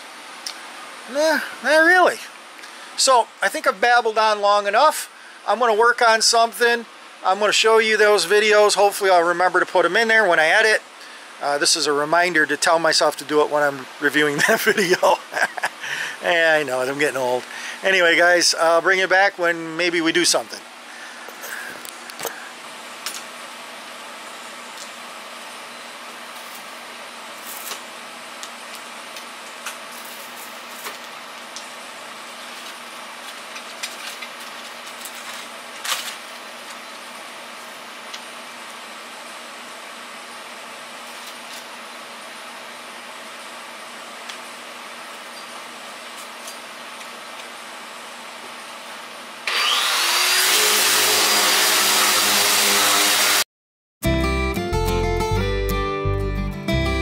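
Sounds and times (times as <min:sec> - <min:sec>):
faint steady hum: 0:00.0 - 0:49.4
power sander whining: 0:49.4 - 0:53.4.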